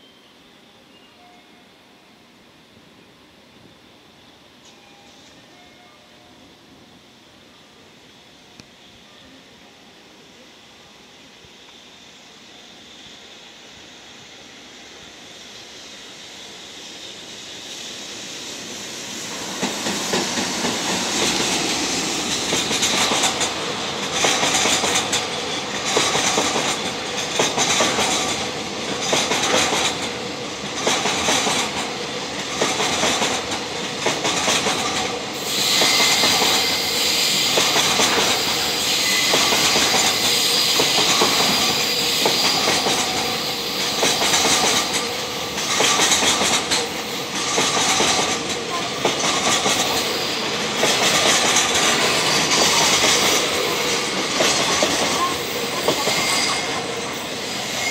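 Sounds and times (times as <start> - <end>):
train wheels clattering over joints: 19.4 - 57.4
high wheel squeal: 35.4 - 44.4, 55.1 - 57.9.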